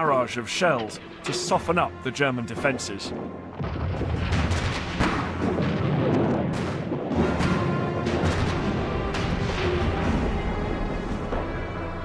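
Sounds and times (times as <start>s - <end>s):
dramatic music: 0.0s - 12.0s
artillery booms: 3.1s - 9.7s.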